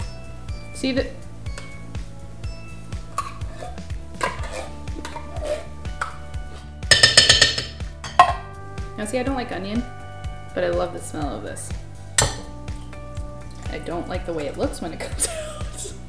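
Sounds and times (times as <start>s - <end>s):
background music: 0.0s - 16.0s
metal spoon scraping tin can: 3.2s - 8.4s.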